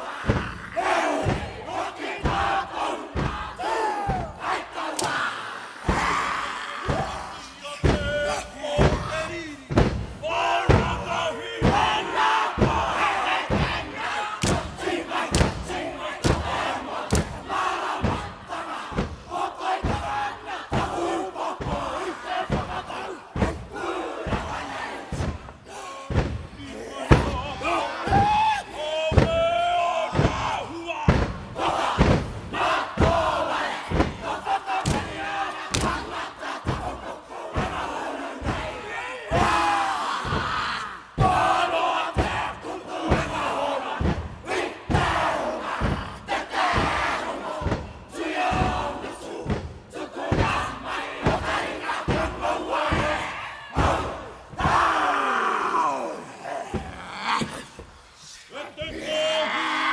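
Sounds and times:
voices shouting a chant in unison: 0.0s - 59.9s
hand slaps on chests and thighs: 4.9s - 5.3s, 14.4s - 16.5s, 17.1s - 17.4s, 34.8s - 36.2s.

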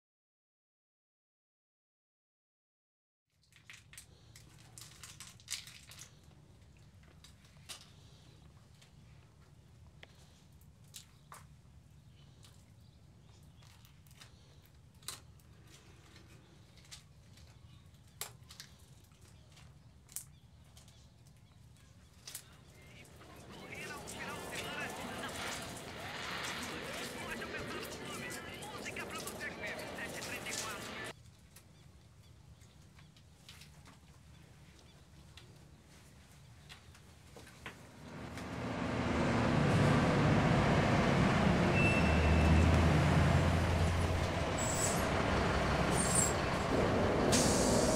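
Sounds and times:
plastic film crinkling: 3.4s - 6.3s
busy chatter: 22.6s - 31.1s.

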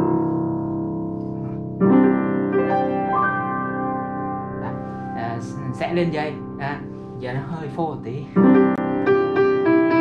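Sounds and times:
upright piano chords: 0.0s - 10.0s.

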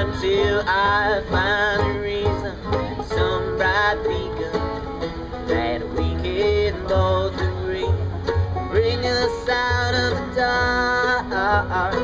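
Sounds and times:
acoustic guitar: 0.0s - 12.0s
banjo rolls: 0.0s - 12.0s
mandolin: 0.0s - 12.0s
upright bass notes: 0.0s - 12.0s.

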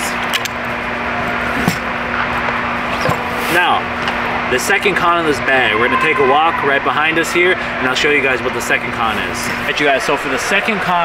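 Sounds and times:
ventilation hum: 0.0s - 11.0s.

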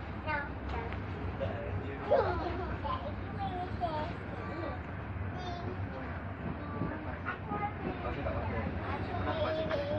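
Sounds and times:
train carriage rumble: 0.0s - 9.9s
faint children's voices: 0.1s - 9.9s.

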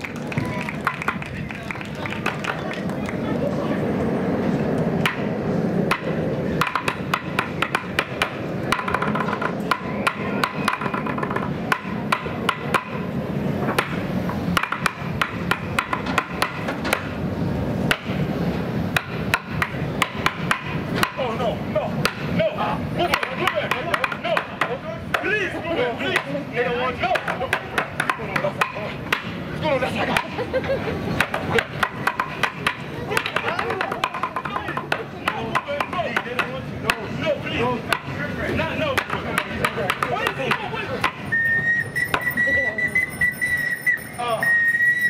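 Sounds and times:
voices: 0.0s - 14.0s, 14.6s - 45.0s
sticks striking everyday objects: 5.0s - 5.3s, 5.9s - 17.2s, 17.9s - 18.2s, 18.9s - 21.4s, 22.0s - 25.3s, 27.0s - 29.5s, 31.1s - 37.1s, 37.9s - 38.2s, 38.9s - 41.3s.

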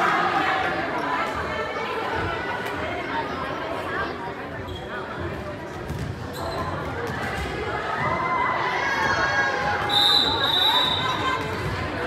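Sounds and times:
people talking in echoing gym: 0.0s - 12.0s.

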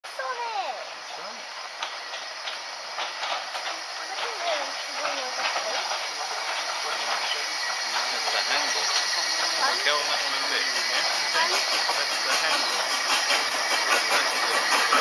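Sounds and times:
steam hiss: 0.1s - 15.0s
sharp train clicks: 0.2s - 15.0s.

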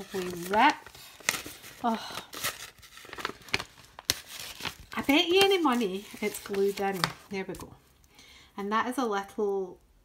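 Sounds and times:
paper envelope rustling: 0.0s - 7.7s.

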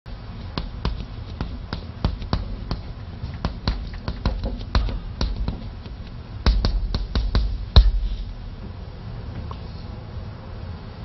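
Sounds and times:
chalk tapping on blackboard: 0.4s - 8.3s.

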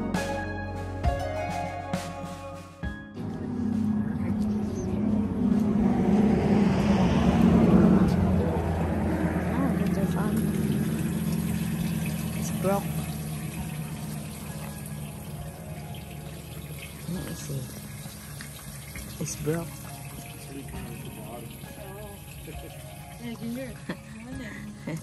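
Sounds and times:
road noise: 3.2s - 25.0s
vehicle engine passing: 3.2s - 25.0s.

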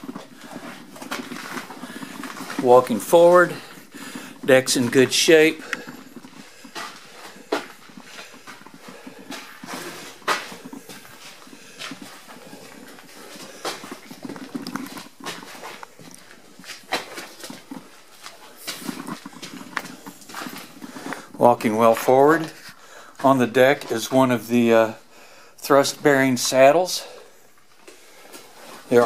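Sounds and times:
footsteps on steel deck: 0.0s - 25.1s.

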